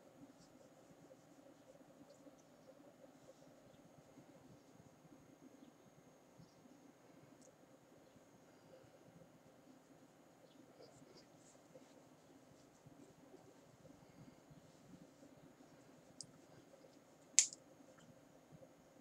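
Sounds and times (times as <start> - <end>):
faint ticks: 6.4 - 7.6.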